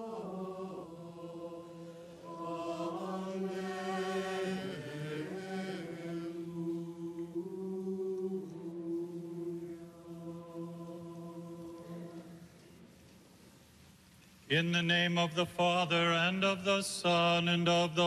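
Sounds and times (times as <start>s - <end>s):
choir chanting: 0.0s - 12.5s.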